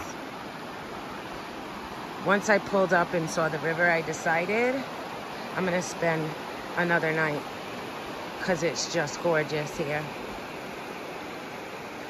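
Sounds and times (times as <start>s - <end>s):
river water rushing: 0.0s - 12.0s.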